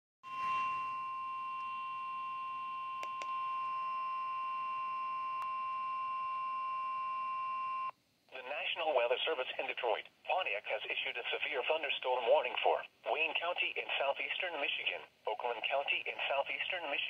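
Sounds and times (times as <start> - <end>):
weather radio alarm tone: 0.2 - 7.9.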